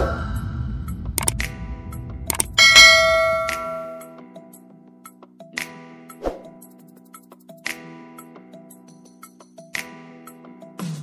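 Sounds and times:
low beat: 0.9 - 4.1
sharp percussion clicks: 1.2 - 1.5, 2.3 - 4.1
bell-like chime: 2.6 - 4.2.

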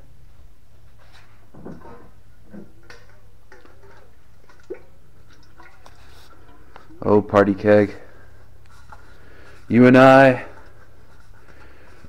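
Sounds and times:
metal keg handling clicks and taps: 2.5 - 7.0.

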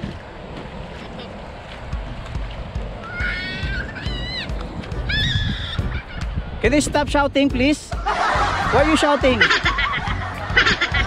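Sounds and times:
wind rumble: 0.0 - 11.0
child shouting: 3.0 - 6.2.

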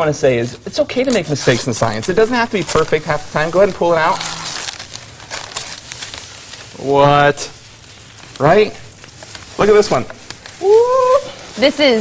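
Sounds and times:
newspaper rustling and crinkling: 0.4 - 12.0.

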